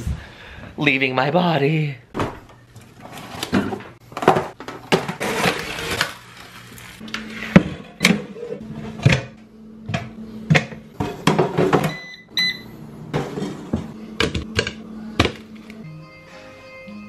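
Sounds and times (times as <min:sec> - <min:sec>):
background music: 0:13.8 - 0:17.0.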